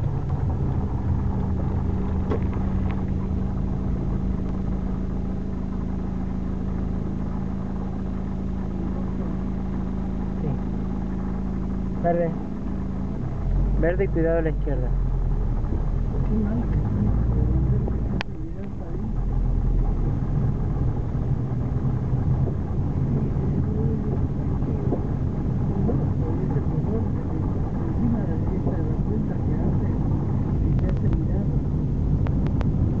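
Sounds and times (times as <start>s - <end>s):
car engine and tyres rumbling: 0.0s - 33.0s.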